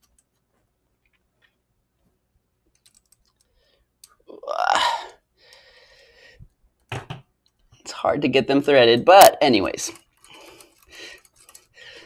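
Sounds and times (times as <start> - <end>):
person grunting: 4.3 - 5.2.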